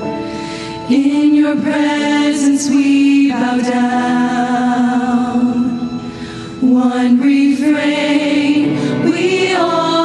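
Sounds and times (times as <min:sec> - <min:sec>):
choir singing: 0:00.9 - 0:06.0, 0:06.6 - 0:10.0.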